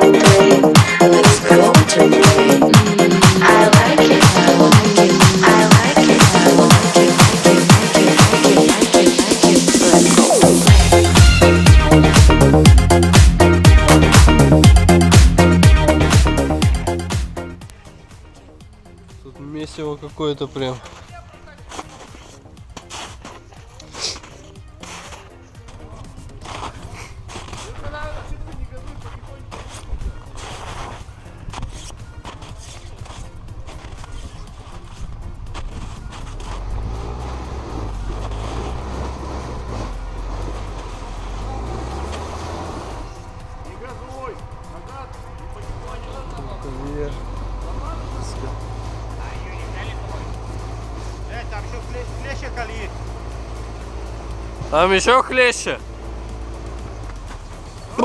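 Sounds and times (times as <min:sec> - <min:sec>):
quad bike engines droning: 0:23.6 - 0:58.0.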